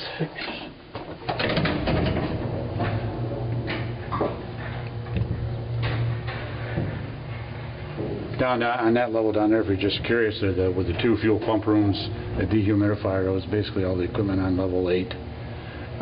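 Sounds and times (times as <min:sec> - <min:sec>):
elevator clicks and rattles: 0:00.9 - 0:08.5
elevator hum: 0:00.9 - 0:16.0.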